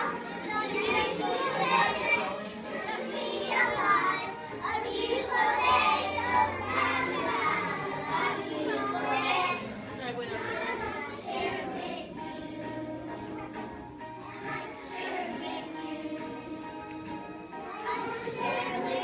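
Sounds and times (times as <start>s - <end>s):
children singing and calling out: 0.0s - 19.0s
recorded music: 0.0s - 19.0s.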